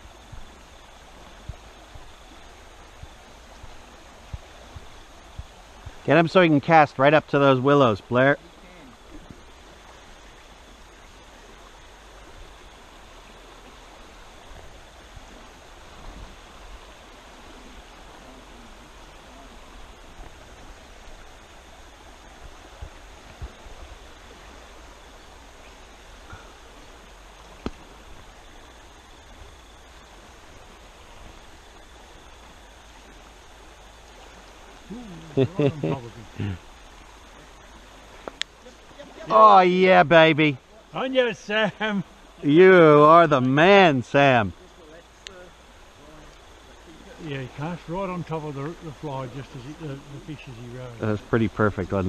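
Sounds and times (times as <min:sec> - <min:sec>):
river water flowing: 0:00.0 - 0:52.0.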